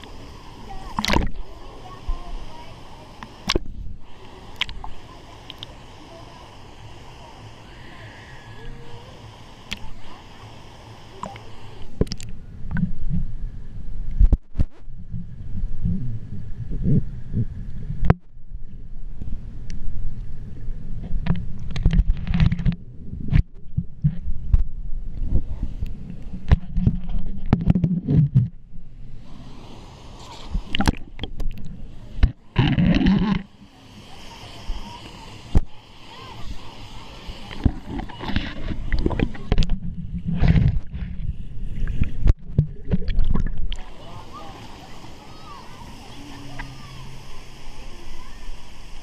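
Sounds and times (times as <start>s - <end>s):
water sloshing and gurgling: 0.0s - 8.5s, 9.2s - 49.0s.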